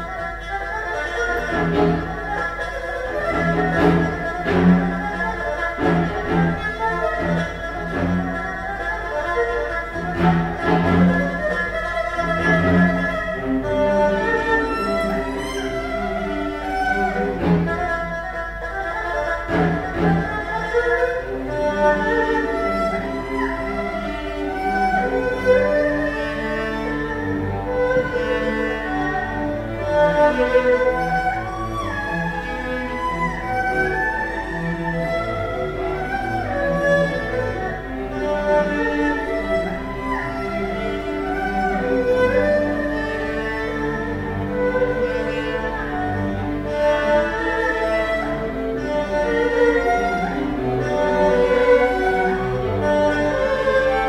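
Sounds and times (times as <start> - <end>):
bowed string ensemble: 0.0 - 54.0
erhu: 0.0 - 54.0.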